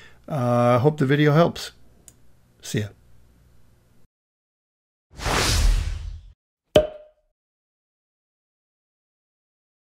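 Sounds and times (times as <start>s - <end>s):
whoosh: 5.2s - 6.4s.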